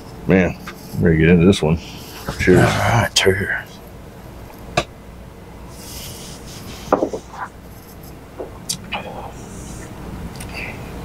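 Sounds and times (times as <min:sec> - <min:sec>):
glass set down on wooden bar: 0:06.9 - 0:07.2
soft breathy hiss: 0:08.9 - 0:11.0.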